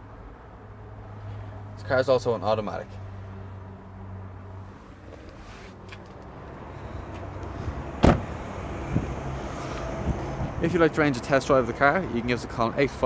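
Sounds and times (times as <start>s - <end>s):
car door shutting: 8.0s - 8.5s.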